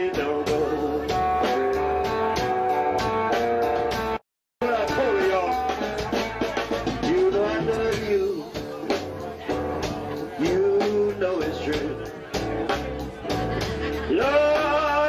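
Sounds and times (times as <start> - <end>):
bass: 0.0 - 15.0
drums: 0.0 - 15.0.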